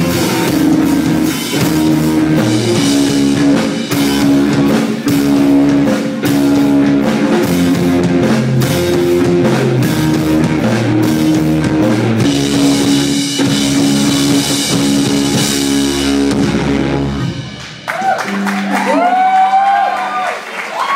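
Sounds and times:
rock band playing: 0.0s - 20.9s.

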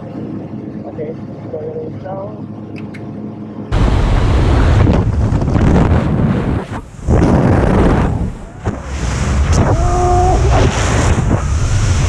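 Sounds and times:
wind rushing over microphone: 3.7s - 12.0s.

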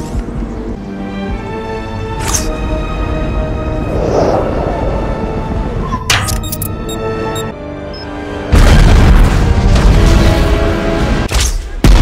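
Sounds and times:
film music: 0.0s - 12.0s
explosion blast rumbling: 8.5s - 10.5s.

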